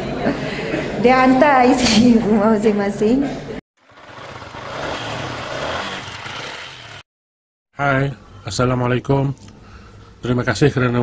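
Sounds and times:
motorcycle engine idling: 3.8s - 7.0s.

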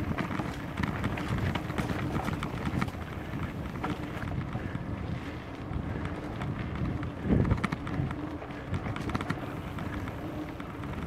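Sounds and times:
rumble and rattle of riding: 0.0s - 11.0s
wind buffeting microphone: 0.0s - 11.0s.

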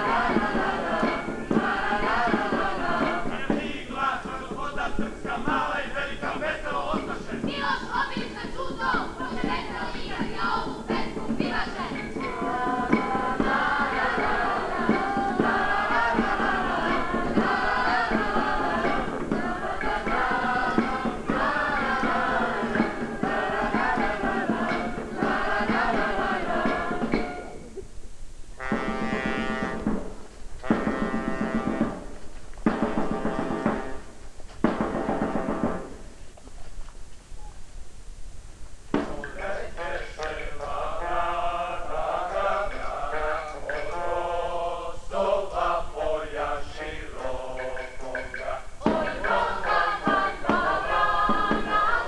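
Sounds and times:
choir singing: 0.0s - 27.6s, 39.2s - 52.0s.

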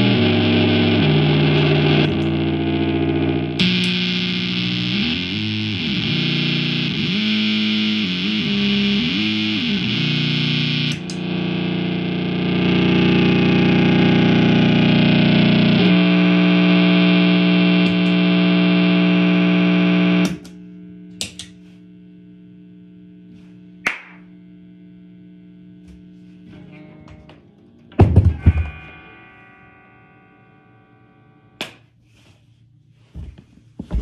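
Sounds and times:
distorted electric guitar feedback: 0.0s - 31.6s
amplifier hum: 0.0s - 34.0s.

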